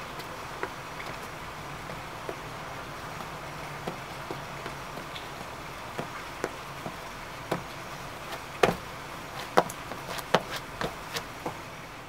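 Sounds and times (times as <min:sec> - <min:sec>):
outdoor background noise: 0:00.0 - 0:12.0
sneaker steps on wet stone: 0:00.1 - 0:11.6.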